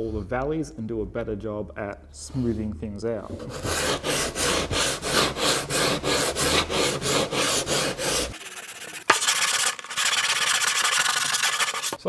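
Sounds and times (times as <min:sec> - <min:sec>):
hand sanding wood: 0:03.3 - 0:12.0
continuous sanding rasp: 0:03.4 - 0:12.0.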